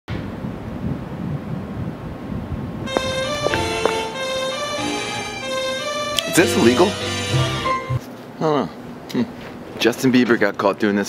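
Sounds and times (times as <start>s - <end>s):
rumbling city street noise: 0.1s - 8.1s
plucked background music: 2.9s - 8.0s.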